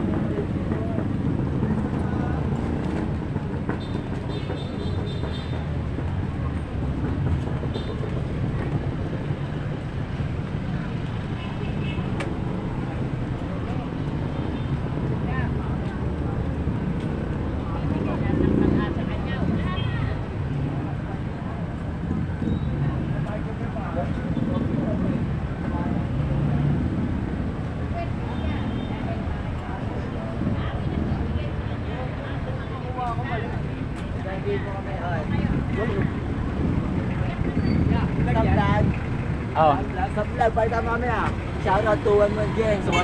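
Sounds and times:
passers-by talking: 0.0s - 43.0s
traffic engines rumbling: 0.0s - 43.0s.

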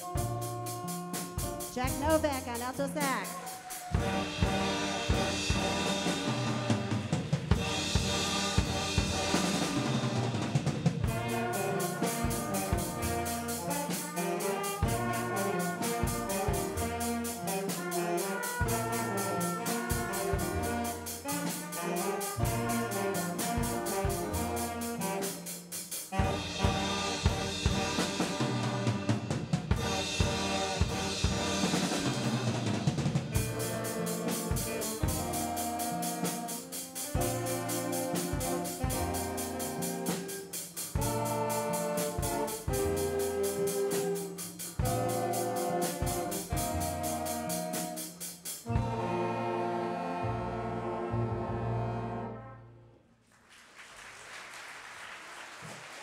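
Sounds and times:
drum kit and cymbals: 0.0s - 50.0s
piano: 0.0s - 52.8s
saxophones playing: 0.0s - 52.9s.

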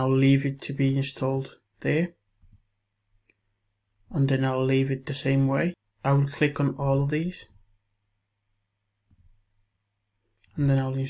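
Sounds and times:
person speaking: 0.0s - 2.3s, 4.0s - 7.7s, 10.3s - 11.0s.

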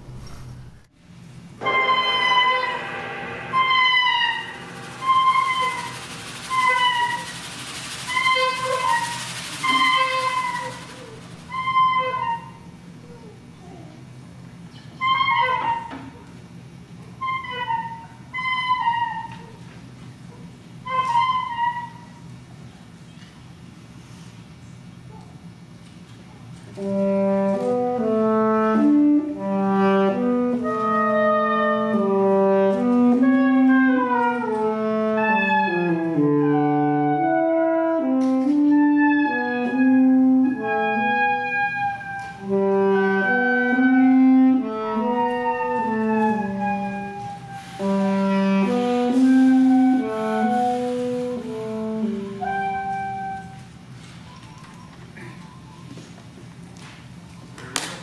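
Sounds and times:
saxophone quartet playing: 1.6s - 12.5s, 26.7s - 53.7s.

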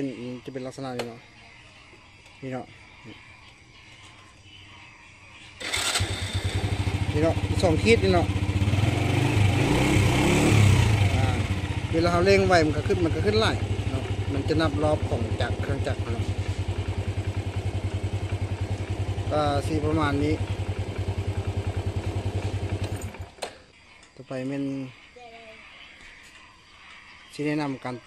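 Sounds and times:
motorcycle engine starting and idling: 5.4s - 23.9s.

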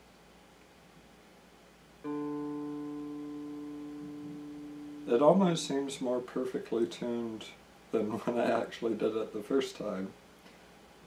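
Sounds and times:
electric guitar string ringing: 2.0s - 6.3s.

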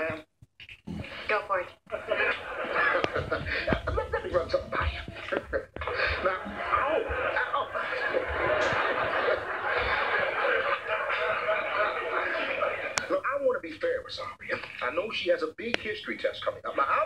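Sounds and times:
studio audience laughing: 1.9s - 13.1s.

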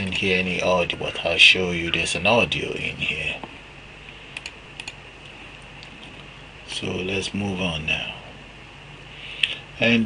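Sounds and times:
steady low hum: 0.0s - 10.0s
computer clicks: 4.3s - 5.9s.

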